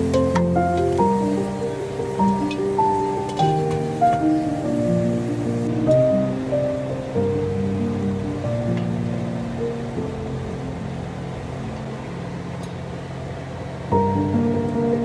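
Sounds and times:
slow background music: 0.0 - 15.0.

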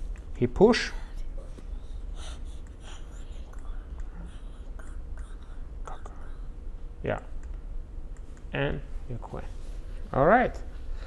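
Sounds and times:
low steady hum: 0.0 - 11.0
person whispering: 2.8 - 6.5
soft clicks: 7.3 - 8.5.

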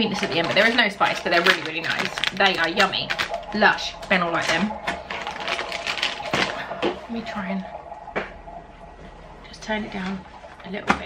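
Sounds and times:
baby monitor crackle: 0.0 - 11.0.

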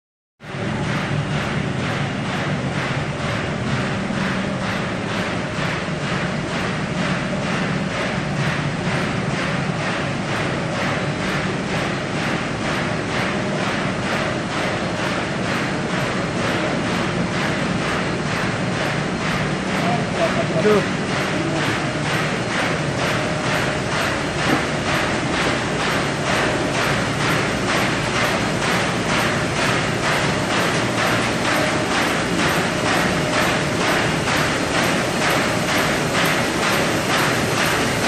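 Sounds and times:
machine arms clattering: 0.4 - 38.0
mechanical hum: 0.4 - 38.0.

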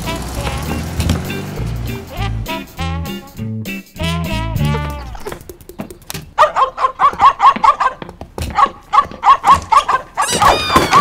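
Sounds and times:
cartoon puppy yapping: 6.4 - 11.0.

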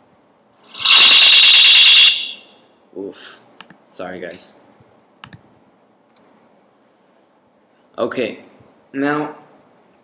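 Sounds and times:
high-pitched audio feedback squeal: 0.7 - 2.6.

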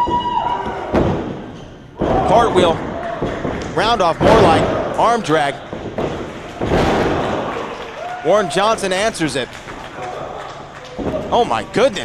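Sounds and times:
body slamming onto ring mat: 5.7 - 7.4.

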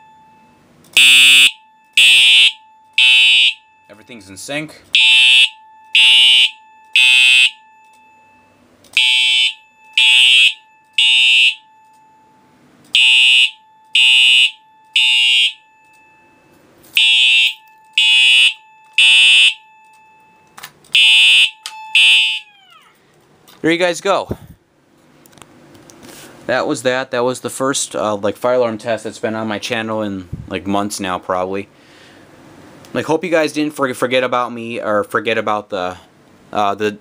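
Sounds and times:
fire alarm horn and chime: 0.0 - 22.9.

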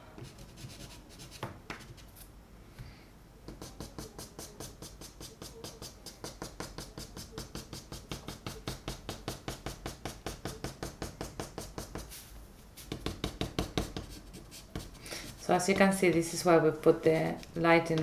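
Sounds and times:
chalk pastel tapping on paper: 3.5 - 12.1, 12.8 - 16.3.

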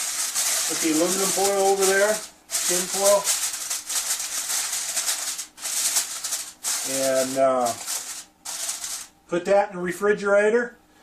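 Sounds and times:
aluminum foil crinkling: 0.0 - 9.1.

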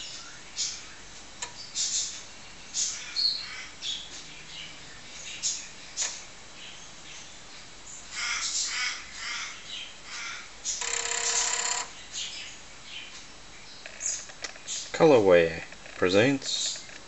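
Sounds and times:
steady buzzing tone: 10.7 - 12.0.

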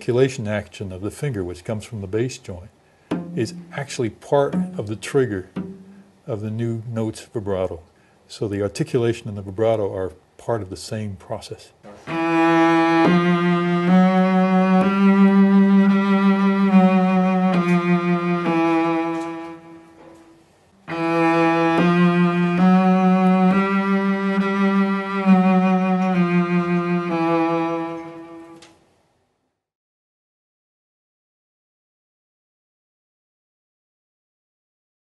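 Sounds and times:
bowed cello notes with vibrato: 3.1 - 6.2, 12.0 - 28.6.

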